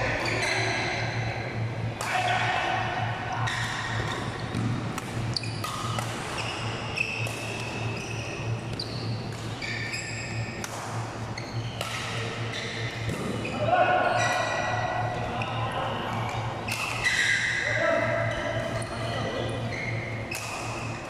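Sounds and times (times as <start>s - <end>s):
steady low hum: 0.0s - 21.0s
shoes squeaking on floor: 0.1s - 1.0s, 3.4s - 4.6s, 5.3s - 10.6s, 11.4s - 11.8s, 12.4s - 14.7s, 17.0s - 17.6s, 18.2s - 21.0s
rackets striking shuttlecock: 2.0s - 2.5s, 3.7s - 7.9s, 8.6s - 11.1s, 11.7s - 13.5s, 16.2s - 17.6s, 20.3s - 21.0s.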